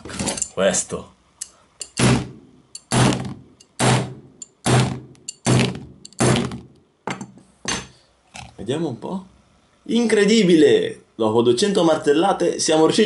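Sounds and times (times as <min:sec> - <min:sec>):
wrench thudding on a phone: 0:05.4 - 0:07.9.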